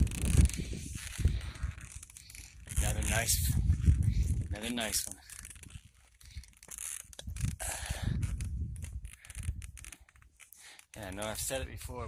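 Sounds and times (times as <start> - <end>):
microphone handling crackles: 0.0 - 12.0
wind rumbling on microphone: 0.0 - 12.0.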